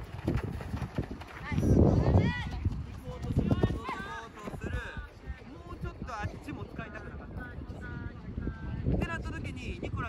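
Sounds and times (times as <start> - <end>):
running footsteps on dirt: 0.0 - 9.0.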